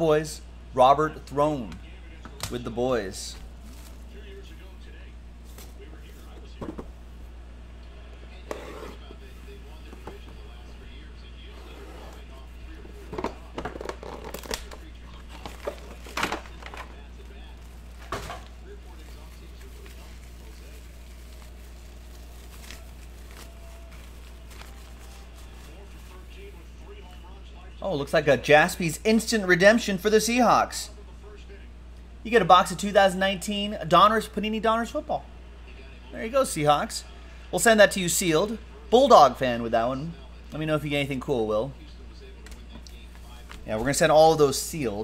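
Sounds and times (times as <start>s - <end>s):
steady low hum: 0.0s - 45.0s
foil crinkling: 3.5s - 4.2s, 13.7s - 26.7s.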